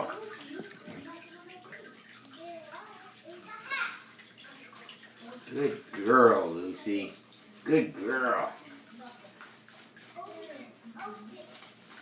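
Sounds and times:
water sloshing in a bathtub: 0.0s - 12.0s
dog being rubbed down: 4.8s - 12.0s.

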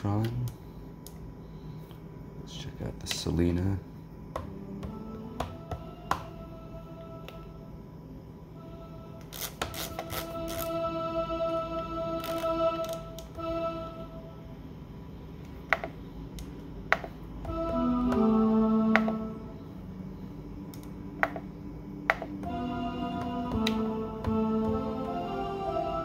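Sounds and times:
held string-machine notes: 4.4s - 7.8s, 8.6s - 14.4s, 17.4s - 19.8s, 22.1s - 26.0s
pad and button clicks: 16.9s - 19.3s.

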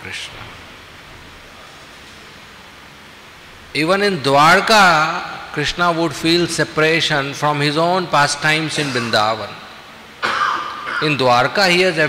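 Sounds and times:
room tone hiss: 0.0s - 12.0s.

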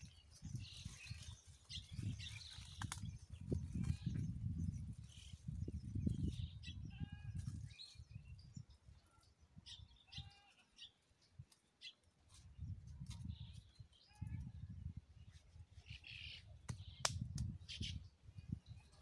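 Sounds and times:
wind rumble on microphone: 0.0s - 10.3s, 12.3s - 19.0s.

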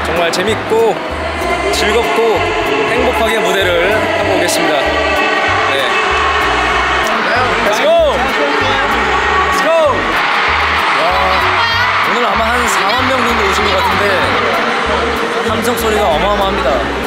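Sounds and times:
large crowd cheering: 0.0s - 17.0s
live pop music with singing: 0.0s - 17.0s.

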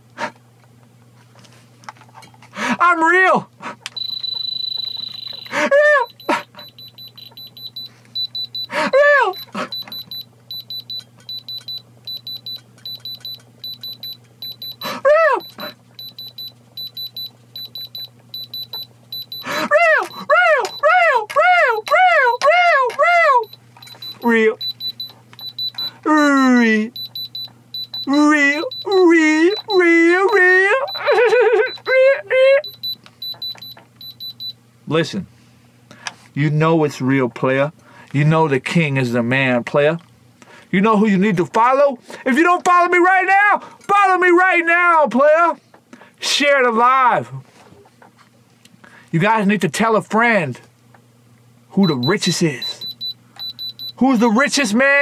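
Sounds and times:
man exclaiming ah: 2.6s - 3.5s, 5.6s - 6.2s, 8.7s - 9.6s, 14.9s - 15.7s, 19.5s - 23.5s, 26.0s - 26.9s, 28.1s - 32.6s
diamond tester beeping: 3.9s - 32.0s, 32.6s - 34.6s, 51.8s - 54.3s.

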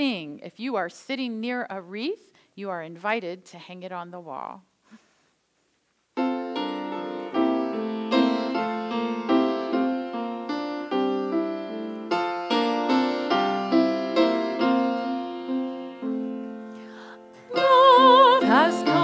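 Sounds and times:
piano playing hymn chords: 6.2s - 19.0s.

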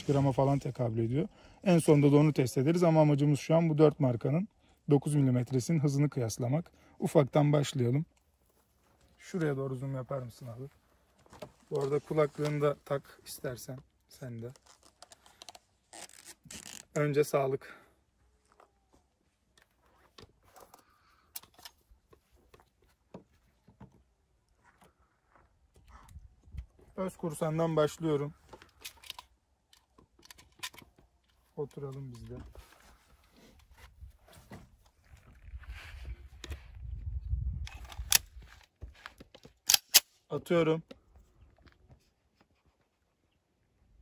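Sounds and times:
earmuffs rustling and scratching: 8.3s - 17.2s
pistol clicks: 39.6s - 40.2s.

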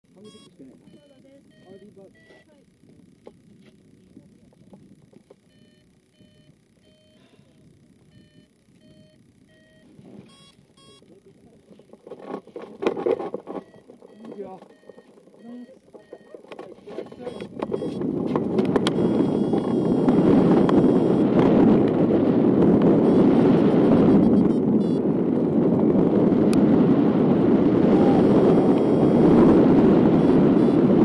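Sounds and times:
short electronic beeps: 0.2s - 2.5s, 5.4s - 7.3s, 8.1s - 11.1s, 13.5s - 18.0s, 18.9s - 21.3s, 23.0s - 25.1s, 27.9s - 29.4s, 30.0s - 31.0s
rush of noise: 17.3s - 31.0s.

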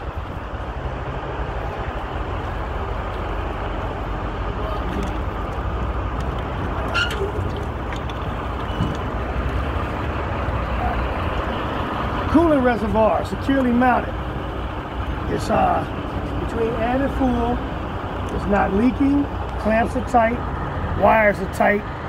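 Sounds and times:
low vehicle rumble: 0.0s - 22.0s
outdoor noise: 0.0s - 22.0s.

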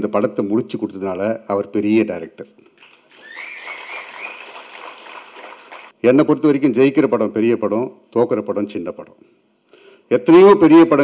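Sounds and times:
audience applause: 2.8s - 6.0s
high whistle: 3.1s - 4.9s.

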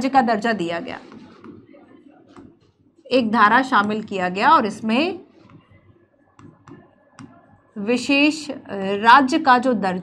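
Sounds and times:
pen tapping on screen: 5.4s - 5.8s, 6.4s - 7.4s.

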